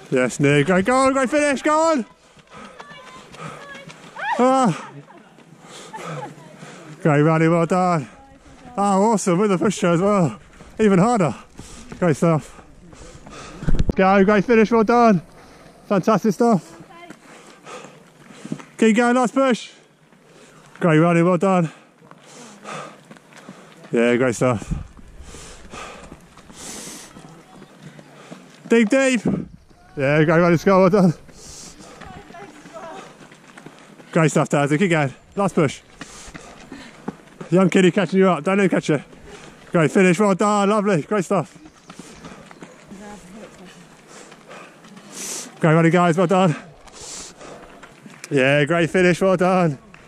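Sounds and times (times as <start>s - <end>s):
footsteps on gravel: 0.0s - 18.8s, 19.9s - 50.0s.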